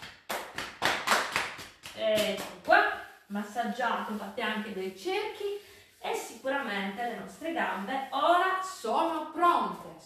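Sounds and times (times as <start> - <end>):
hands slapping thighs: 0.0 - 2.7.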